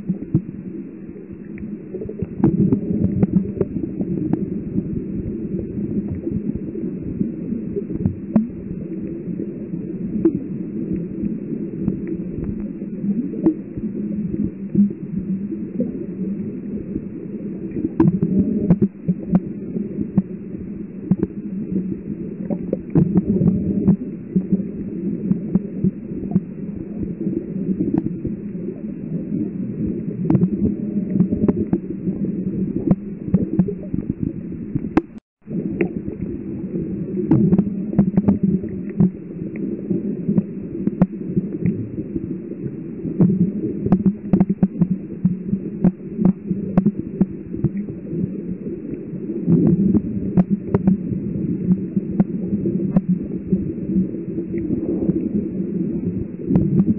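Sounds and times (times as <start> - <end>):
underwater hum and rumble: 0.0 - 56.9
faint clicks: 10.2 - 15.9, 17.7 - 20.4, 21.0 - 21.4, 37.3 - 39.7, 40.3 - 41.8, 43.2 - 47.9, 48.9 - 51.0, 51.7 - 53.1, 56.5 - 56.9.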